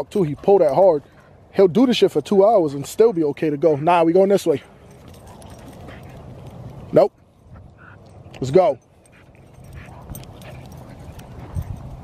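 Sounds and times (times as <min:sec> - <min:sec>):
dog panting hard: 0:09.0 - 0:11.7.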